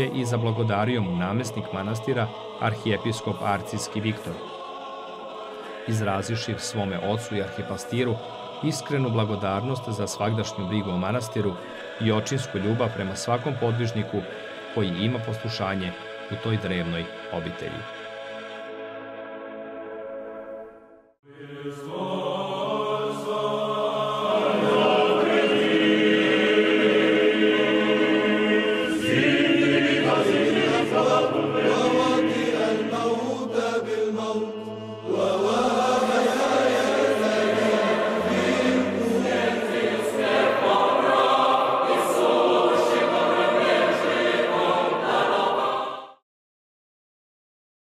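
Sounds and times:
choir singing church chant: 0.0 - 46.2.

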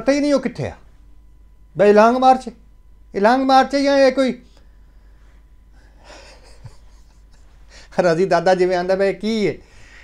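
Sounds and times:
man breathing softly: 4.6 - 6.4, 7.4 - 8.0, 9.6 - 10.0.

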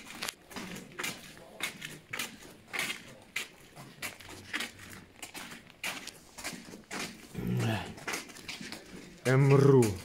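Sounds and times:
footsteps crunching on grit: 0.0 - 10.0.

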